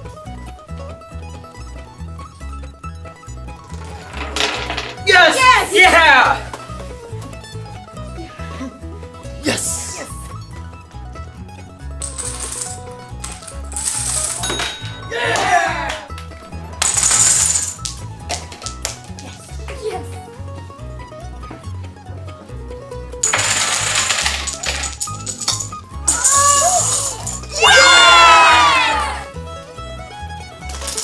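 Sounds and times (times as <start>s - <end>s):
background music: 0.0s - 31.0s
marbles clattering and clinking: 3.5s - 5.5s, 12.0s - 15.1s, 16.8s - 19.3s, 23.2s - 27.6s, 30.7s - 31.0s
dominoes toppling: 3.6s - 5.4s, 12.0s - 14.8s, 16.8s - 19.3s, 23.2s - 27.6s, 30.7s - 31.0s.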